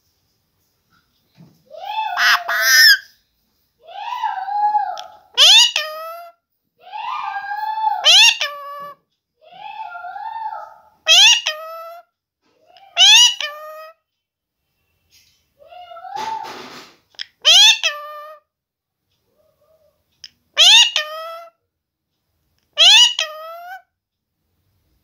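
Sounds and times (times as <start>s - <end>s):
parakeet screeching calls: 1.8s - 3.2s, 5.0s - 6.3s, 7.0s - 9.0s, 9.7s - 12.0s, 12.9s - 14.0s, 17.4s - 18.4s, 20.6s - 21.5s, 22.8s - 23.8s.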